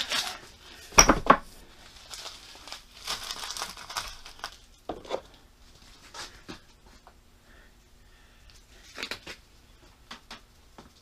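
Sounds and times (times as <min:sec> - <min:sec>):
rustling: 0:01.4 - 0:07.1.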